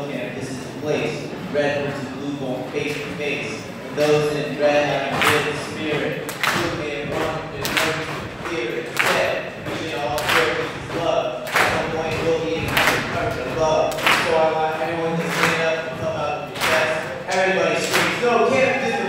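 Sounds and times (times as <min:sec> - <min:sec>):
man rapping into microphone: 0:00.0 - 0:19.0
steady beat: 0:04.3 - 0:19.0.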